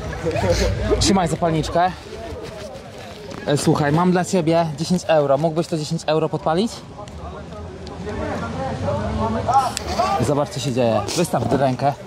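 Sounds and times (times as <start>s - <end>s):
men talking: 0.0s - 12.0s.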